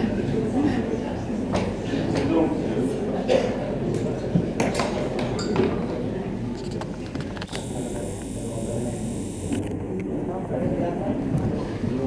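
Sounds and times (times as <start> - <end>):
faint high hiss: 7.5 - 9.6.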